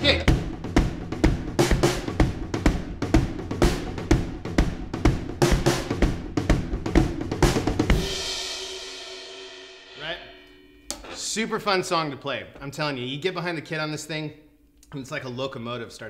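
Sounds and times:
drum kit groove: 0.0 - 13.4
cymbal crash ringing: 8.0 - 11.6.

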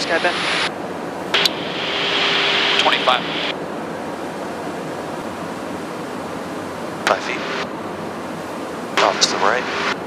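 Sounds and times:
aircraft background noise: 0.0 - 10.0
faint hum: 0.0 - 10.0
open-mic hiss: 1.3 - 3.6
person speaking over radio: 2.8 - 3.5, 7.1 - 7.6, 9.0 - 9.9.

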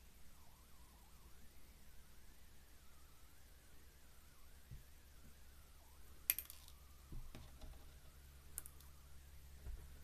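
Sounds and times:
faint low hum: 0.0 - 10.0
glass beads clicking and tapping: 6.3 - 6.8, 8.6 - 8.9.

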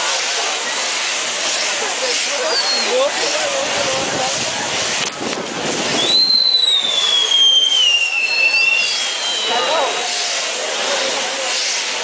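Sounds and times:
fireworks hissing and crackling: 0.0 - 12.0
falling firework whistle: 2.4 - 3.1, 5.7 - 10.5.

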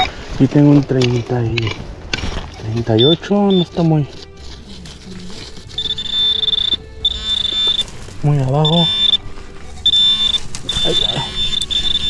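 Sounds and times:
metal detector pinpointer buzz: 2.9 - 3.9, 5.8 - 7.9, 8.6 - 9.2, 9.8 - 12.0.

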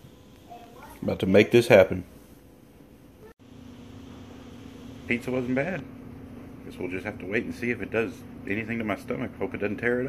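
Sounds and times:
low hum with held tone: 0.0 - 10.0.

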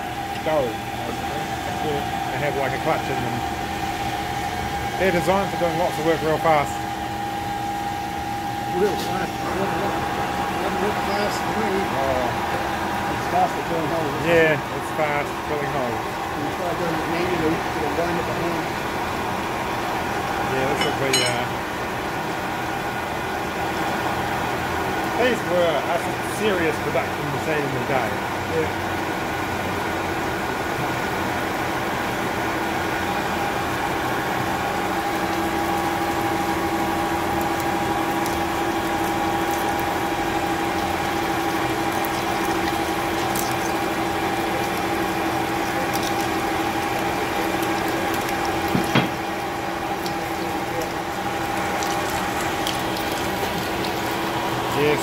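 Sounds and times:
splashing coolant: 0.0 - 55.0
lathe running: 32.0 - 55.0.

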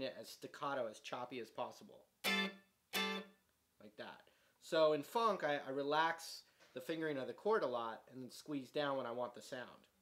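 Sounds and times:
staccato electric guitar chord stabs: 2.2 - 3.3.

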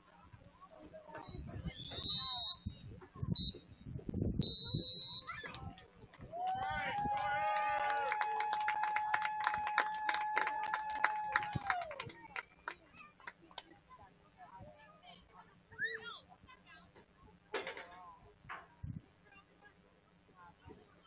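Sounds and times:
referee's whistle: 1.3 - 3.7, 4.4 - 5.5
sharp claps: 5.4 - 13.7
players and spectators shouting: 6.3 - 12.0.

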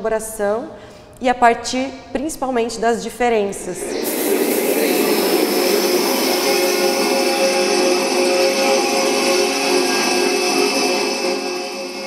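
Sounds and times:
long held electronic tones: 3.6 - 12.0.

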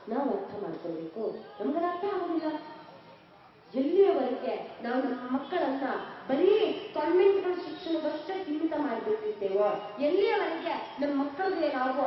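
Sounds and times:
woman speaking into a microphone: 0.0 - 2.8, 3.7 - 12.0.

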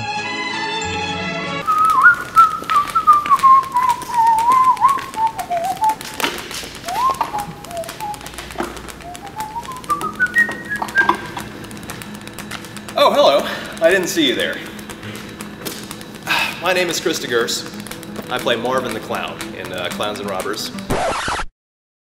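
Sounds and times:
person whistling a melody: 1.6 - 20.9.

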